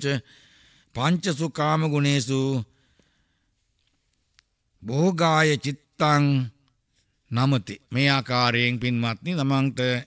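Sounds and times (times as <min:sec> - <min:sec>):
man preaching: 0:00.0 - 0:02.7, 0:04.8 - 0:06.6, 0:07.3 - 0:10.0.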